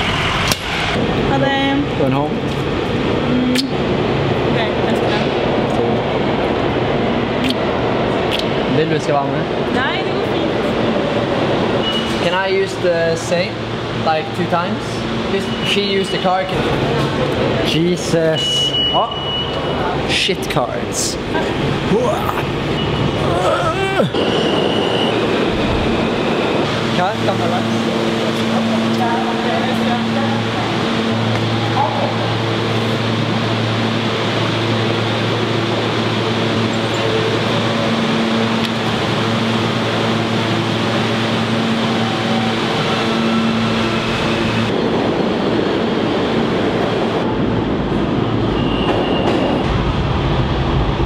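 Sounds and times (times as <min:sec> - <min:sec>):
subway train rumbling: 0:00.0 - 0:51.0
high wheel squeal: 0:24.1 - 0:26.6, 0:48.3 - 0:49.6.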